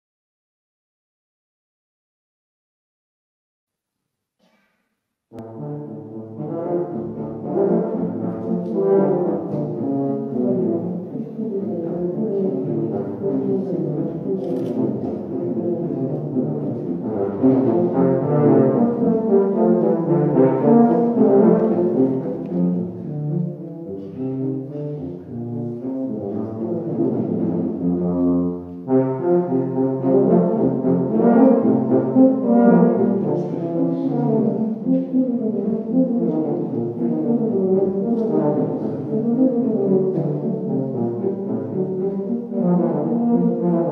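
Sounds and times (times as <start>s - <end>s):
tuba duet: 5.3s - 43.9s.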